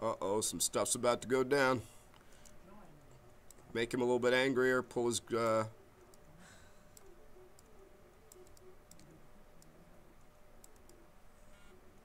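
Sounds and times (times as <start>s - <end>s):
computer mouse clicks: 6.9s - 7.7s, 8.3s - 9.8s, 10.6s - 11.0s.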